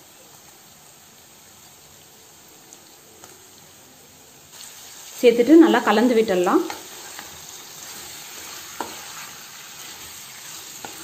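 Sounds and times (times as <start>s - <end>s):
onions sizzling in a pan: 0.0s - 11.0s.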